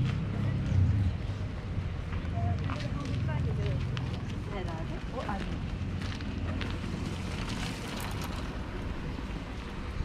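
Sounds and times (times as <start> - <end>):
faint street ambience: 0.0 - 10.0.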